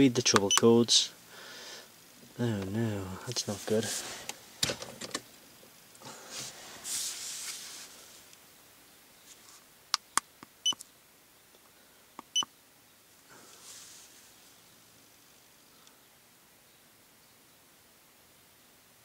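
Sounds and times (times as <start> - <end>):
sharp keypad clicks: 0.3 - 0.7
rustling: 2.2 - 5.3, 6.0 - 8.4, 9.2 - 9.8, 13.2 - 15.6.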